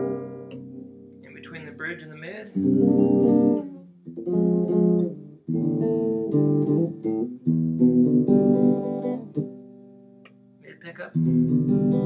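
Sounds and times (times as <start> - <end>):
electric guitar chords strummed: 0.0 - 10.2, 11.2 - 12.0.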